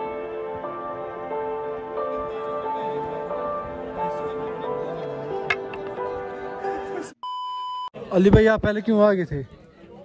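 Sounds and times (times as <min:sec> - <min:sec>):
background music with held notes: 0:00.0 - 0:07.1.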